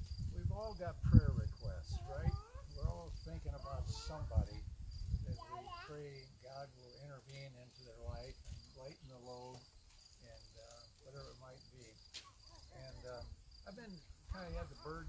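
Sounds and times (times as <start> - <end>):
crickets chirping: 0.0 - 15.0
faint speech: 1.6 - 4.6, 5.3 - 9.6, 10.2 - 15.0.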